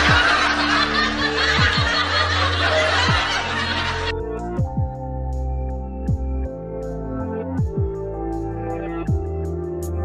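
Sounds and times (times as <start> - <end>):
laughter: 0.0 - 4.2
music with deep bass beats: 0.0 - 10.0.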